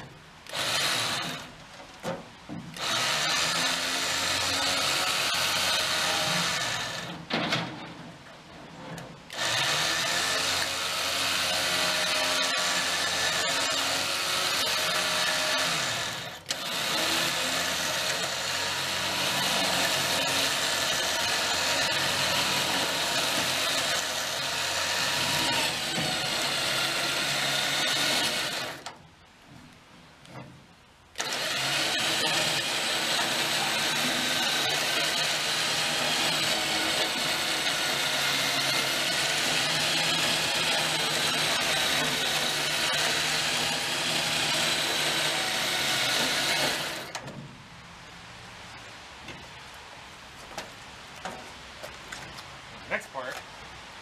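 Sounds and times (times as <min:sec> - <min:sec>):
electric winch motor whining: 0:00.4 - 0:01.6, 0:02.8 - 0:07.2, 0:09.3 - 0:28.9, 0:31.2 - 0:47.3.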